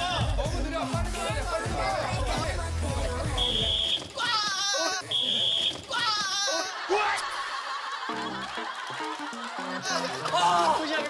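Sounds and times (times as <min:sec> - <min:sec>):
upbeat background music: 0:00.0 - 0:04.2, 0:07.5 - 0:11.0
whistle blasts: 0:03.4 - 0:04.1, 0:05.0 - 0:05.9
people shrieking and yelling: 0:03.4 - 0:07.5, 0:09.8 - 0:11.0.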